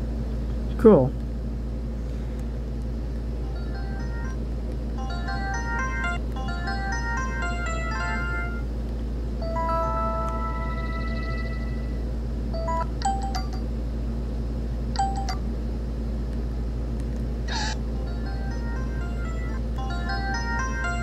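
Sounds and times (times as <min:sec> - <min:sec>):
air conditioner hum: 0:00.0 - 0:21.0
phone alert tones: 0:03.4 - 0:04.4, 0:05.0 - 0:08.7, 0:09.4 - 0:12.0, 0:15.0 - 0:15.4, 0:17.5 - 0:21.0.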